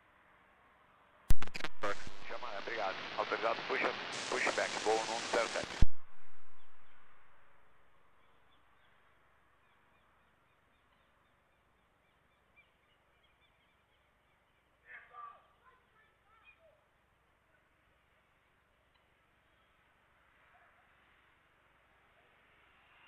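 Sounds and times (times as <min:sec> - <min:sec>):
radio hiss: 0:01.3 - 0:08.2
faint chirps: 0:01.4 - 0:09.0, 0:18.8 - 0:23.0.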